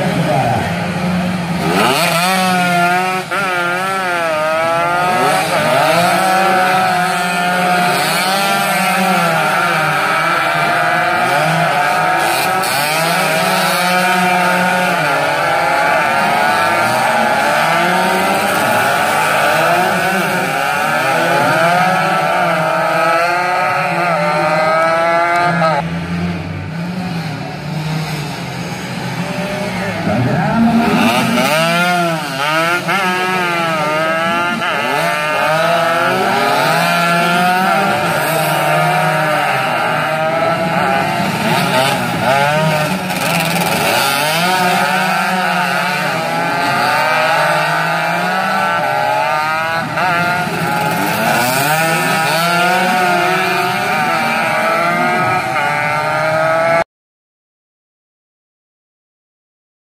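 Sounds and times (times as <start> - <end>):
racing motorcycles revving: 0.0 - 56.9.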